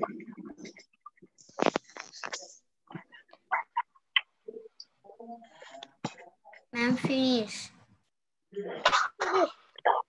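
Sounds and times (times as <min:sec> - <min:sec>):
person coughing and clearing throat: 0:08.6 - 0:10.0.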